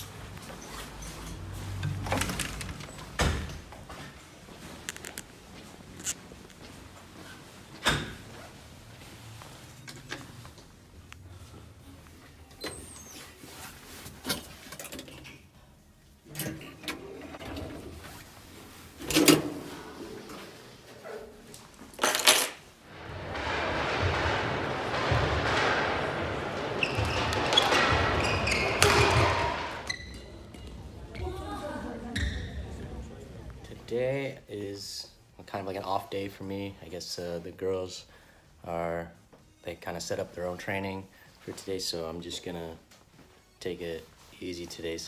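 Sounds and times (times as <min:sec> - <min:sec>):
doors opening and shutting: 0:00.0 - 0:05.3, 0:07.2 - 0:08.6, 0:12.4 - 0:13.4, 0:16.2 - 0:33.7.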